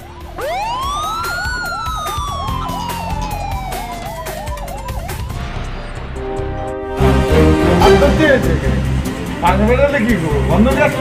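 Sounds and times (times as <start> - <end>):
warbling siren: 0.0 - 5.4
rising and falling siren sweep: 0.0 - 6.3
music with a beat: 0.0 - 7.8.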